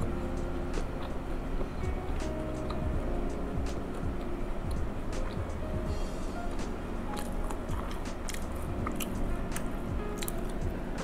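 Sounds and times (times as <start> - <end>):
quiet background music: 0.0 - 11.0
person chewing: 0.8 - 2.8, 6.5 - 10.9.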